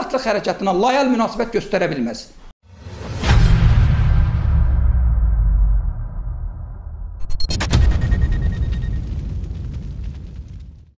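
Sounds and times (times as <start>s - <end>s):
deep boom low rumble: 3.0s - 11.0s.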